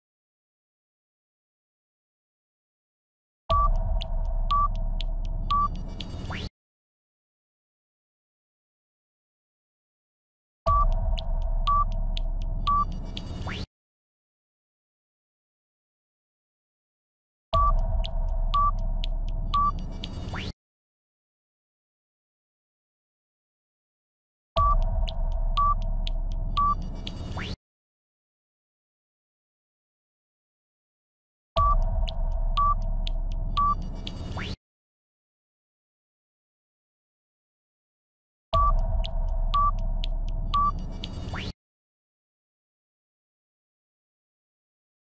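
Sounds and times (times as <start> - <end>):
light ticks: 3.6 - 6.4, 10.7 - 13.7, 17.8 - 20.4, 24.6 - 27.5, 31.6 - 34.5, 38.6 - 41.5
short beeps: 4.5 - 4.7, 11.7 - 11.9, 12.7 - 13.0, 18.6 - 18.8, 25.6 - 25.8, 26.6 - 26.8, 32.6 - 32.8, 33.6 - 33.8, 39.6 - 39.8, 40.6 - 40.8.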